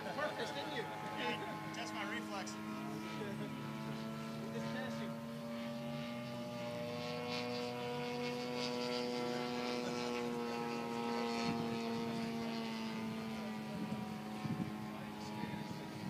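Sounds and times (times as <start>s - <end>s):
model airplane engine droning: 0.0s - 16.0s.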